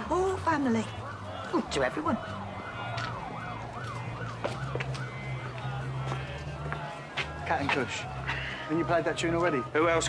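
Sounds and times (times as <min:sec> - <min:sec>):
emergency siren yelping: 0:00.0 - 0:10.0.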